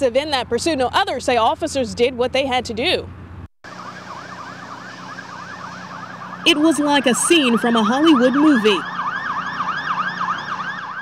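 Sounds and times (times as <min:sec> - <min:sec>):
police siren yelping: 0:03.6 - 0:11.0.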